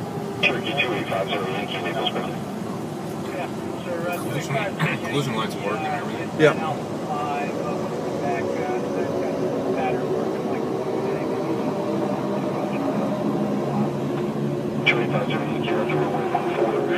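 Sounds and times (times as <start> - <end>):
faint voices: 0.0 - 16.9
steady engine drone: 0.0 - 16.9.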